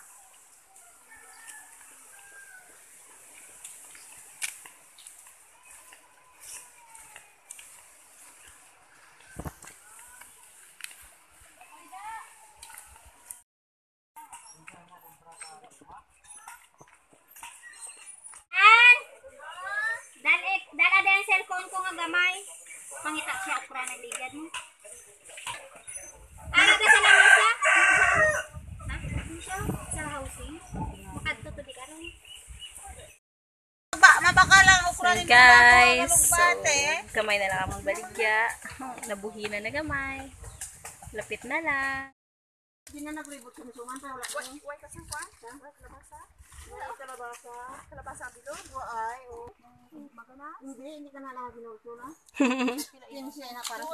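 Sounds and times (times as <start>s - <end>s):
rooster crowing: 0.9s - 2.8s, 26.6s - 28.5s.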